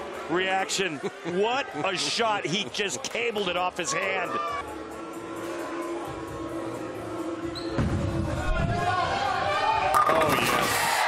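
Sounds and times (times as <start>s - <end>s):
faint crowd hubbub: 0.0s - 11.0s.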